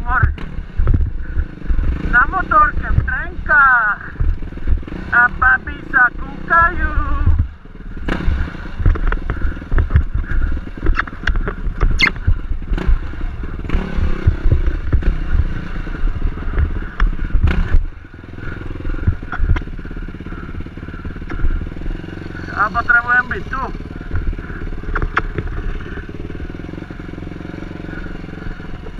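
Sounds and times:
dirt bike engine revving: 0.0s - 28.9s.

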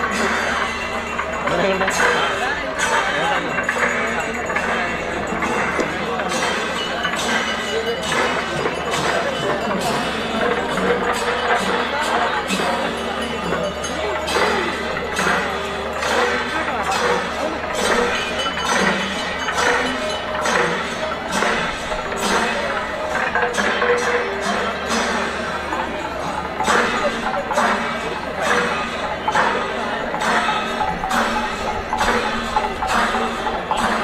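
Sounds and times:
crowd voices: 0.0s - 34.0s
drums playing rapidly: 0.0s - 34.0s
hand cymbals clashing: 0.0s - 34.0s.

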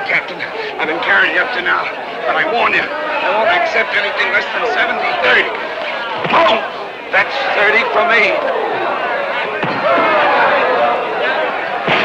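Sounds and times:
crowd shouting and yelling: 0.0s - 12.0s.

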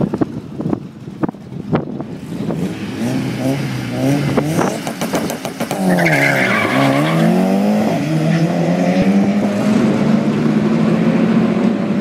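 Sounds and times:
car engine popping and revving: 0.0s - 12.0s.

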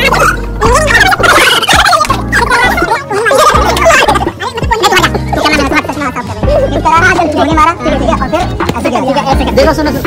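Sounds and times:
men laughing and hollering: 0.0s - 8.2s
background music with bass: 0.0s - 10.0s.

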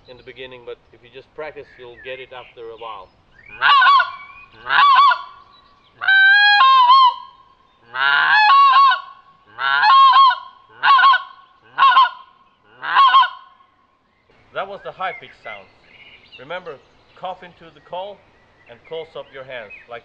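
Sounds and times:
goose call: 3.5s - 5.4s, 6.0s - 13.6s.

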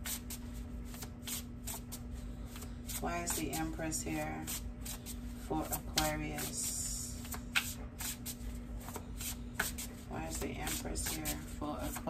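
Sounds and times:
cards being shuffled: 0.0s - 3.5s, 7.2s - 12.0s.

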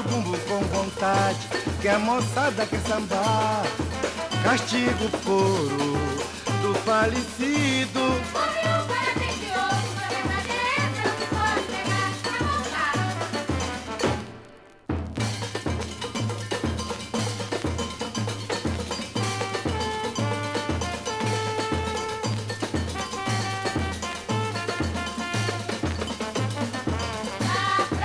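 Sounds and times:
samba music: 0.0s - 28.0s.

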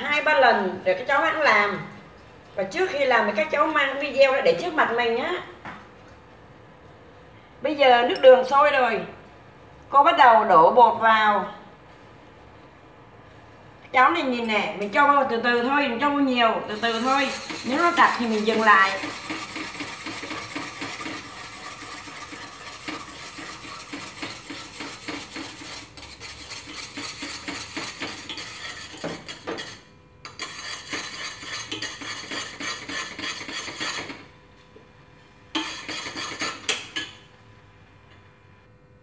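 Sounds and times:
chopsticks stirring in metal pot: 16.7s - 34.2s, 35.6s - 37.1s.

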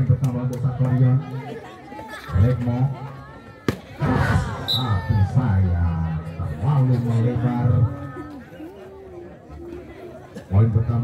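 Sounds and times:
referee's whistle blip: 4.6s - 5.0s.

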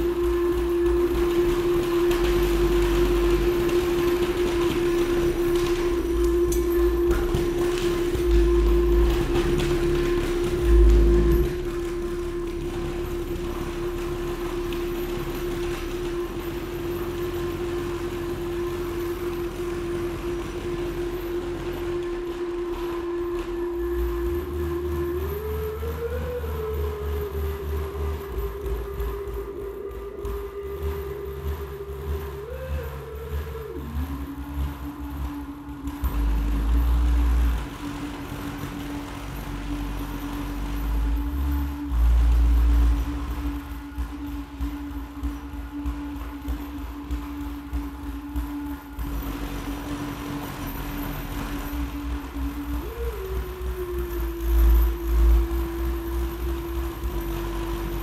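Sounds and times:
low rumble: 0.0s - 58.0s
sustained gliding tone: 0.0s - 58.0s.

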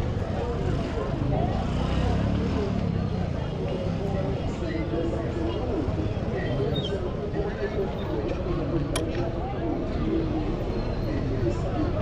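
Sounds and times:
chatter of passing voices: 0.0s - 12.0s.

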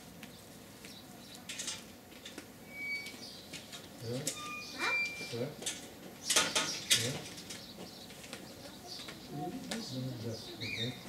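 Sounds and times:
high bird chirps: 4.3s - 5.4s.

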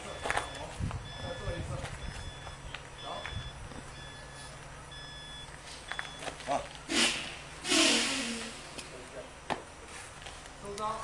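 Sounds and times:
electronic beep: 0.0s - 6.3s
breathy bursts of voice: 6.9s - 8.6s.

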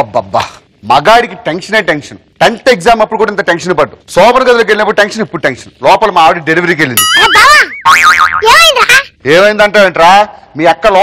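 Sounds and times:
cartoon springy boing: 7.0s - 8.8s.

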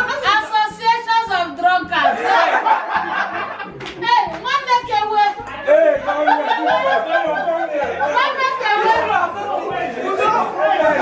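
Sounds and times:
lively group chatter: 1.9s - 11.0s.

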